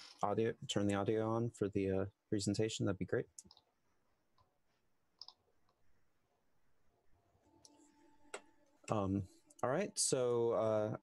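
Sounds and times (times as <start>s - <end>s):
faint clicks: 5.2s - 5.8s.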